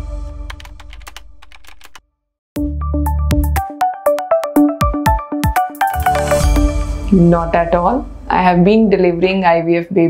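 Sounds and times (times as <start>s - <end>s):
held synth chord: 2.8s - 9.2s.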